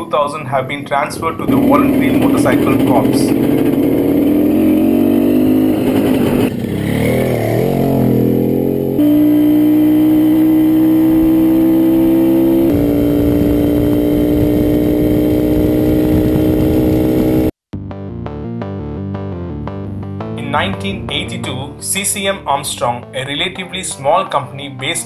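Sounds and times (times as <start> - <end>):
motorcycle engine running: 0.8 - 17.5.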